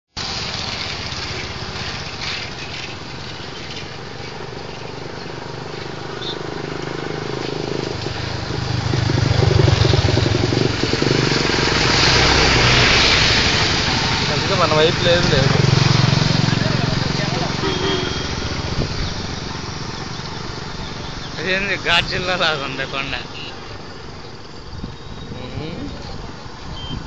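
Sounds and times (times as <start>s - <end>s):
traffic noise: 0.2s - 27.0s
vehicle engine running loudly: 0.3s - 21.3s
wind on microphone: 18.4s - 21.1s, 24.6s - 27.0s.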